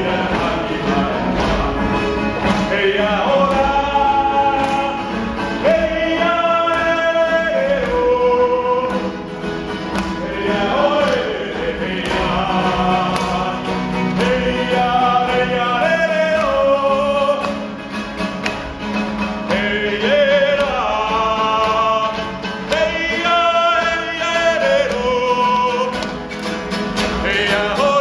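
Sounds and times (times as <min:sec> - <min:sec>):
group of people singing: 0:00.0 - 0:28.0.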